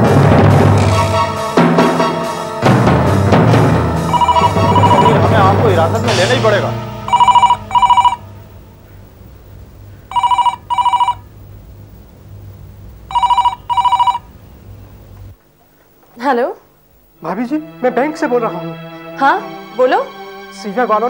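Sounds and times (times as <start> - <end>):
landline telephone ringing: 4.1 - 6.2, 7.0 - 8.3, 10.1 - 11.3, 13.1 - 14.3.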